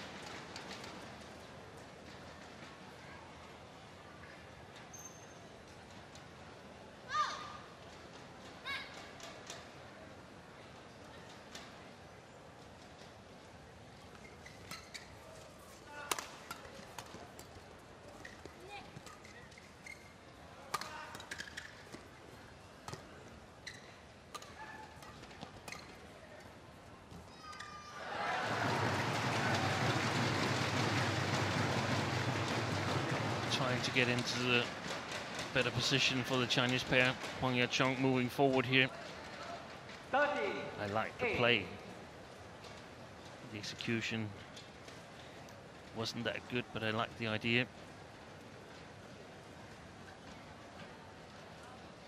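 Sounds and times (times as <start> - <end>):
shoes squeaking on court: 4.9 - 5.5, 14.0 - 27.8
arena ambience: 10.9 - 52.0
racket hitting shuttlecock: 15.9 - 17.2, 20.7 - 22.0
crowd cheering: 27.7 - 34.2.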